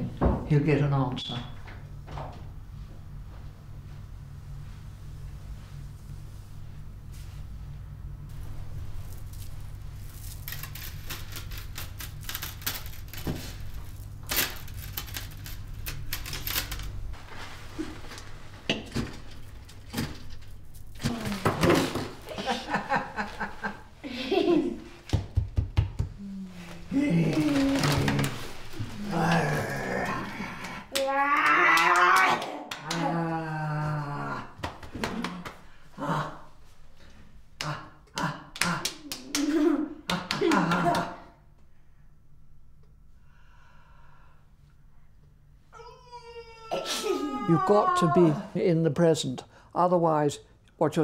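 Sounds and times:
steady low hum: 0:00.0 - 0:51.0
boy vocalising wordlessly: 0:45.8 - 0:48.5.

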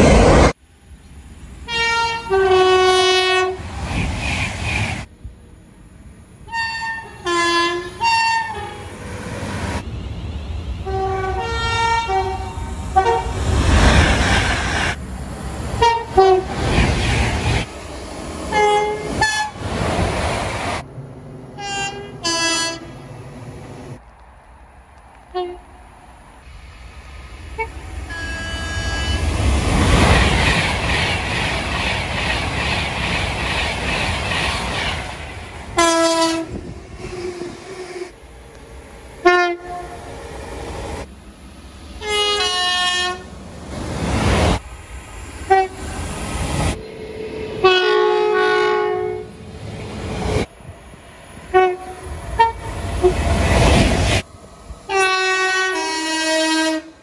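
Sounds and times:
train rushing past: 0:00.0 - 0:57.0
train horn blasts: 0:01.7 - 0:03.6, 0:06.5 - 0:08.9, 0:10.8 - 0:13.3, 0:15.8 - 0:16.5, 0:18.5 - 0:19.6, 0:21.6 - 0:22.9, 0:25.3 - 0:25.7, 0:27.6 - 0:29.2, 0:35.8 - 0:36.7, 0:39.2 - 0:40.1, 0:42.0 - 0:43.3, 0:45.5 - 0:45.8, 0:47.6 - 0:49.3, 0:51.5 - 0:53.2, 0:54.9 - 0:57.0.

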